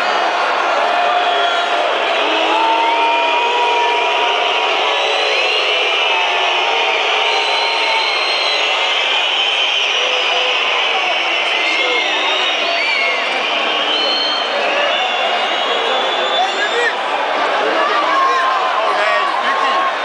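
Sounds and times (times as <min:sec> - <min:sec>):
stadium crowd cheering: 0:00.0 - 0:20.0
long shouts: 0:00.8 - 0:08.8.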